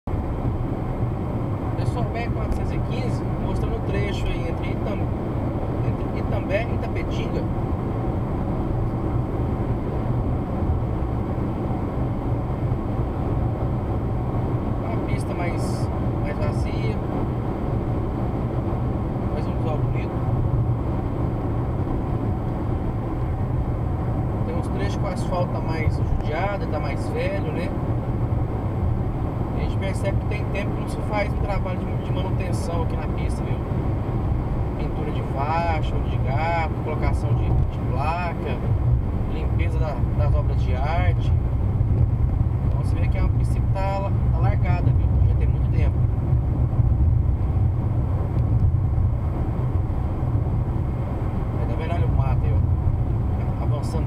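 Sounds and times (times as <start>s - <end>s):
car cabin road and engine noise: 0.0s - 54.0s
man's voice: 5.8s - 7.5s, 42.7s - 46.0s, 51.6s - 52.6s, 53.6s - 54.0s.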